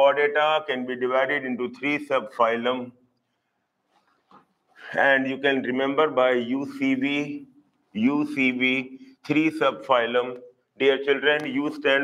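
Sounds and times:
man speaking: 0.0 - 3.0, 4.8 - 12.0.

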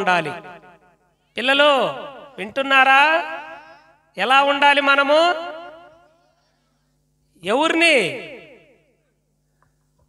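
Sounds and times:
man speaking into microphone: 0.0 - 0.6, 1.4 - 3.6, 7.4 - 8.4.

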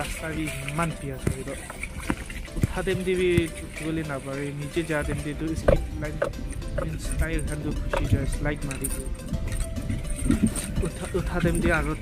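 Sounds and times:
metallic jingle: 3.6 - 12.0.

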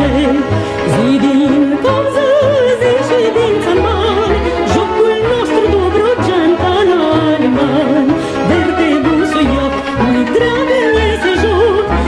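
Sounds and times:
folk dance song with folk band: 0.0 - 12.0.

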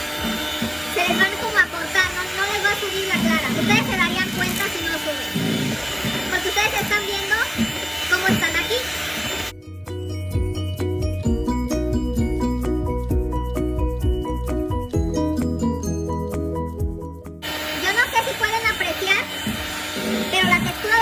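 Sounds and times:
electric hand mixer running: 0.0 - 9.6, 17.4 - 21.0
music: 9.5 - 21.0.

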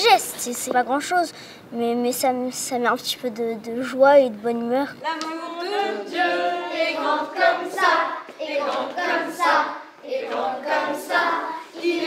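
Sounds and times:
children and adults singing: 5.1 - 12.0.

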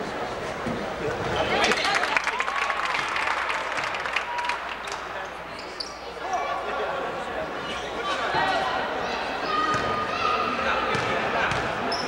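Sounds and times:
voices in gym: 0.0 - 12.0
sneakers squeaking: 4.9 - 6.7, 7.5 - 8.5, 9.4 - 12.0.

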